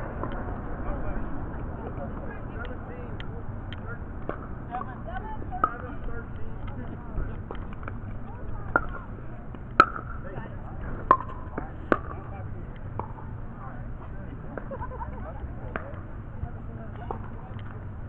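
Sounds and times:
outdoor background noise: 0.0 - 18.0.

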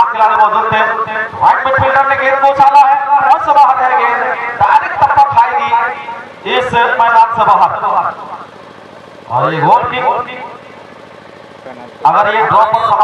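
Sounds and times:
man commentating: 11.7 - 13.0.

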